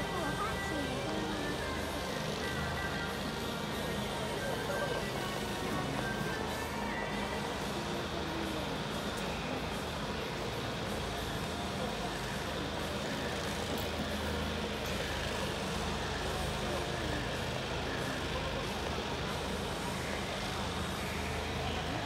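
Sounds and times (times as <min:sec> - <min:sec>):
faint indistinct voices: 0:00.0 - 0:22.0.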